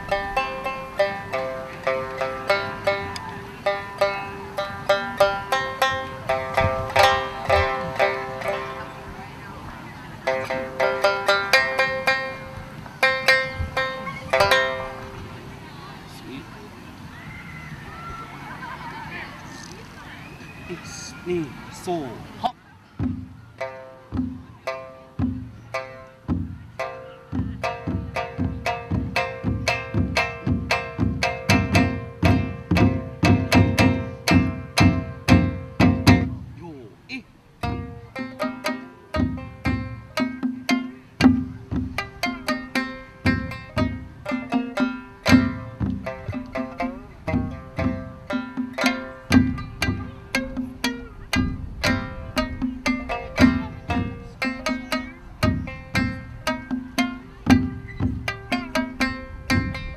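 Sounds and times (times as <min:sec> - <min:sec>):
shamisen plucked in quick runs: 0:00.0 - 0:09.2, 0:10.2 - 0:15.6, 0:23.0 - 0:36.5, 0:37.6 - 0:59.9.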